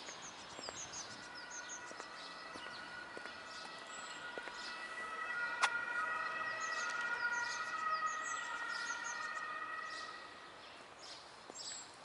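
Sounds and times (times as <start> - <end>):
small birds chirping: 0.0 - 12.0
distant high-pitched whine: 0.1 - 10.6.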